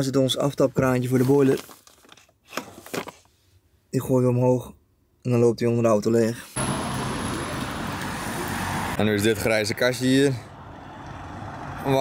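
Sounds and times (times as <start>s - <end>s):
road traffic: 6.6s - 12.0s.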